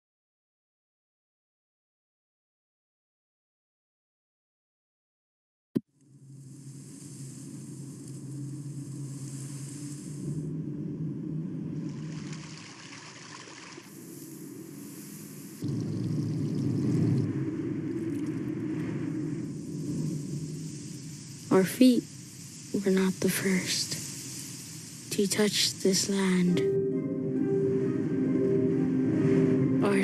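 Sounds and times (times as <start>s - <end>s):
low steady rumbling: 5.9s - 30.0s.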